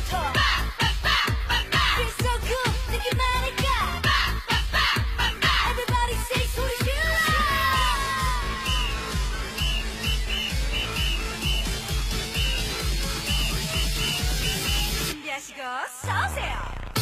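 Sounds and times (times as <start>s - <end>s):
electronic dance music: 0.0s - 17.0s
high chirps: 7.8s - 15.1s.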